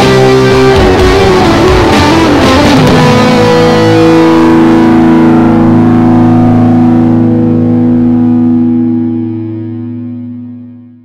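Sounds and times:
distorted guitar chord: 0.0s - 11.0s.

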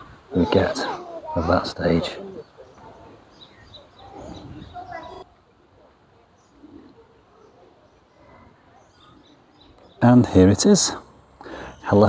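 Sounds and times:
bird calls: 0.0s - 12.0s
faint outdoor ambience: 0.0s - 12.0s.

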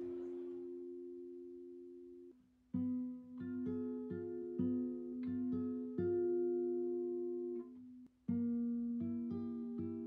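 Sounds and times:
acoustic guitar chord ringing: 0.0s - 3.0s.

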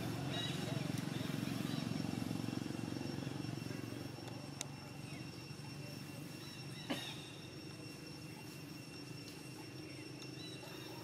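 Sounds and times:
faint high-pitched tones: 0.0s - 11.0s.

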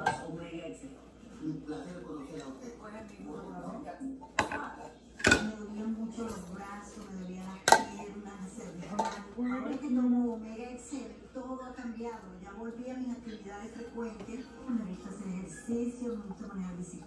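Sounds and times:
quiet background talk: 0.0s - 17.0s
bowls and utensils clattering: 4.3s - 8.1s, 8.7s - 9.9s.

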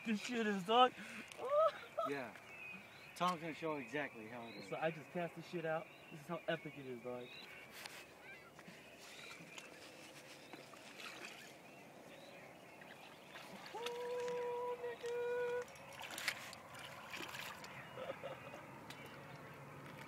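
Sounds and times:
waterside ambience: 0.0s - 20.0s.

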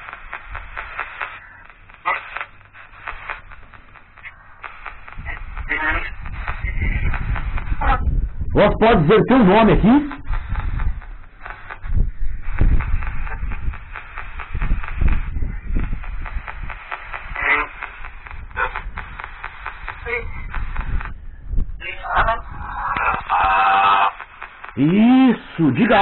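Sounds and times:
chopped static fragments: 0.0s - 26.0s
voice-like bursts: 2.0s - 3.0s, 5.2s - 10.6s, 17.3s - 19.0s, 19.8s - 21.0s, 21.8s - 26.0s.

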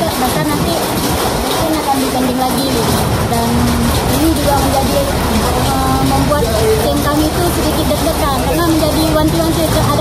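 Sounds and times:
outdoor background rush: 0.0s - 10.0s
woman speaking: 0.0s - 10.0s.

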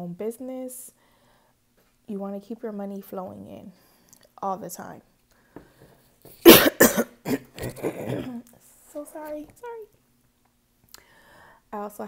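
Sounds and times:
woman coughing: 6.4s - 8.4s.

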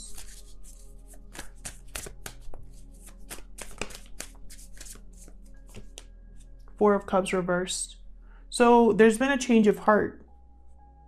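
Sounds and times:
cards being shuffled: 0.0s - 6.1s.

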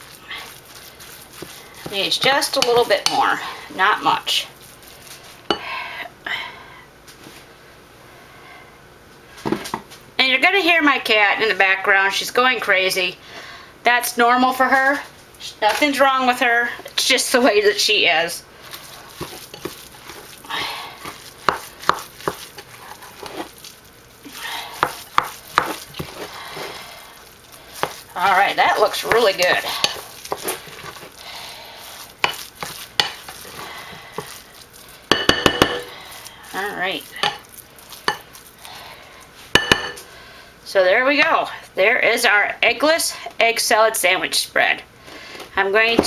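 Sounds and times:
spoon stirring thick mixture: 0.0s - 5.8s, 15.6s - 40.2s.

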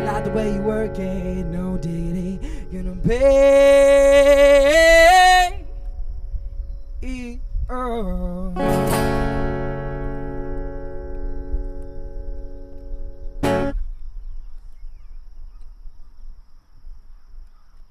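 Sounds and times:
man singing: 0.0s - 5.7s, 7.0s - 9.3s
acoustic guitar: 0.0s - 6.0s, 8.2s - 13.9s.

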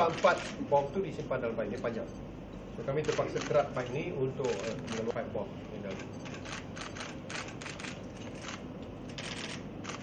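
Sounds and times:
camera shutters clicking: 4.4s - 5.1s.

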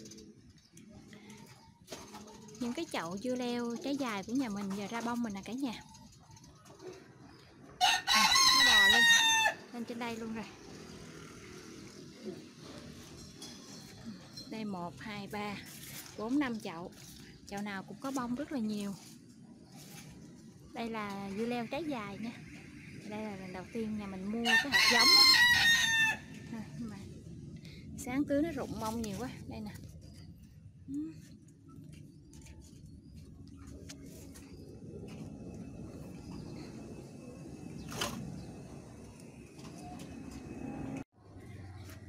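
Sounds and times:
rooster crowing: 7.8s - 9.7s, 24.4s - 26.4s.

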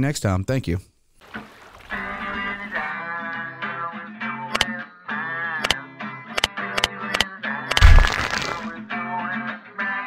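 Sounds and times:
sharp clicks: 4.5s - 4.7s, 6.4s - 8.6s
crash and shatter sound effect: 7.7s - 8.7s.

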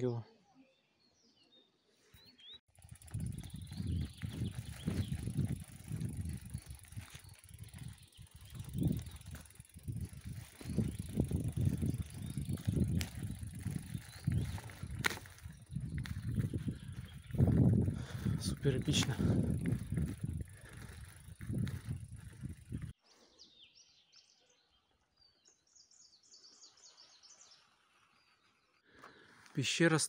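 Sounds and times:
bicycle tyres on dirt: 2.2s - 23.0s, 26.3s - 30.0s
wind rumbling on microphone: 2.8s - 23.0s.

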